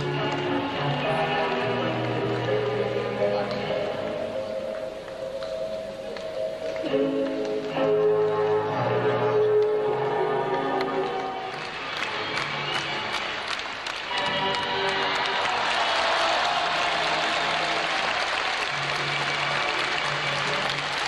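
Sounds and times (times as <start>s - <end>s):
floor-exercise music: 0.0s - 15.5s
crowd applause: 11.0s - 21.0s.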